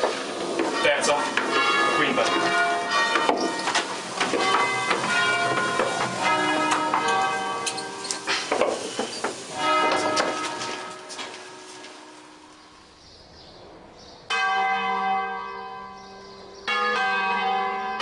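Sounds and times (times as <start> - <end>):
church bells ringing: 0.0 - 18.0.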